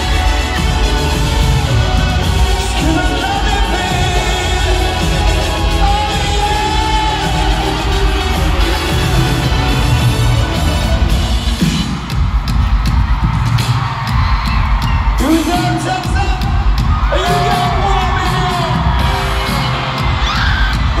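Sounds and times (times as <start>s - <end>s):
voices singing long notes: 0.0s - 11.4s
live pop band: 0.0s - 21.0s
crowd whooping: 16.9s - 21.0s.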